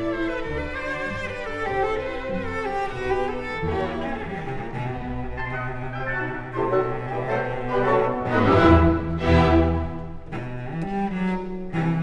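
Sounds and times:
orchestral strings: 0:00.0 - 0:12.0
solo cello bowed melody: 0:00.0 - 0:12.0.

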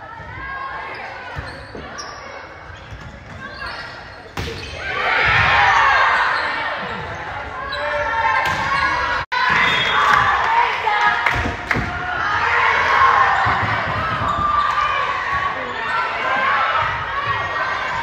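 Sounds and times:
people shouting in echoing hall: 0:04.8 - 0:18.0
volleyball hits: 0:11.2 - 0:12.1.

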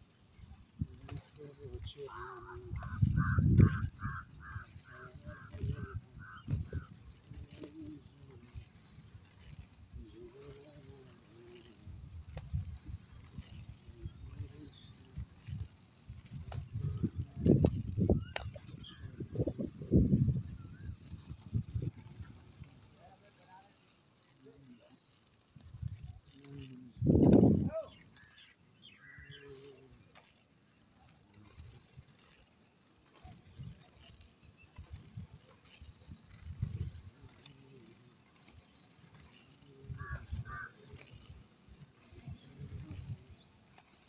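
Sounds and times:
wind rumble on microphone: 0:00.3 - 0:23.0, 0:25.5 - 0:28.0, 0:33.2 - 0:37.9, 0:39.0 - 0:43.6
faint voices: 0:00.4 - 0:44.0.

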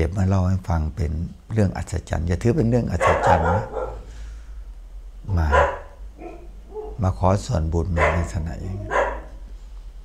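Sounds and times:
man talking: 0:00.0 - 0:03.9, 0:05.3 - 0:05.9, 0:07.0 - 0:09.0
dog barking: 0:02.9 - 0:04.1, 0:05.4 - 0:07.1, 0:07.9 - 0:09.4.

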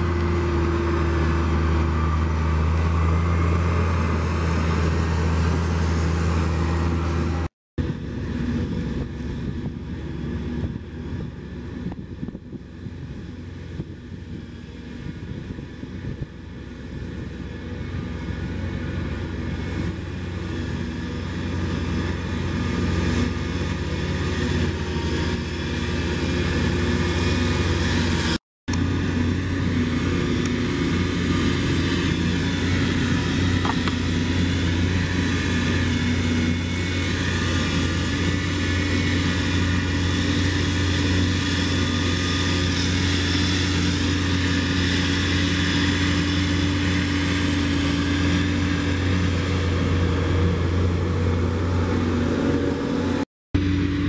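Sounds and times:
forage harvester machinery drone: 0:00.0 - 0:54.0.

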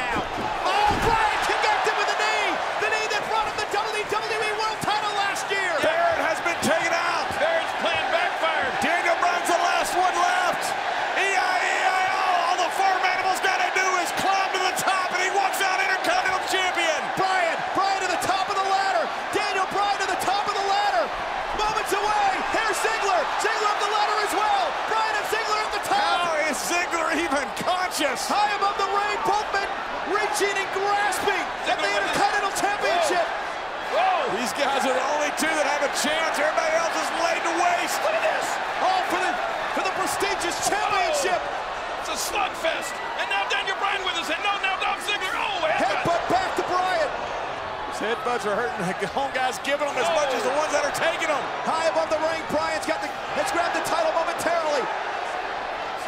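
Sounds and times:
stadium crowd cheering: 0:00.0 - 0:56.0.

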